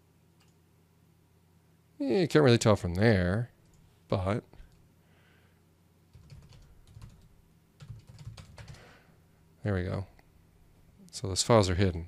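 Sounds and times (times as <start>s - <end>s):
keyboard typing: 6.1s - 8.9s.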